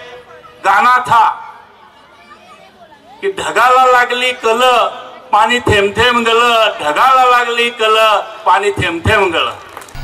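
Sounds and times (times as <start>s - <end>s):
man speaking into a microphone: 0.0s - 1.6s, 3.2s - 9.6s
faint background chatter: 1.4s - 3.3s.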